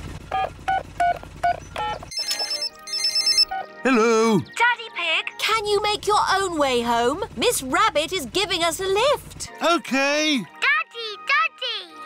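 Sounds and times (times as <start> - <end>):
phone ringing with trilling tones: 0.4 - 3.8
keypad beeps: 0.7 - 3.7.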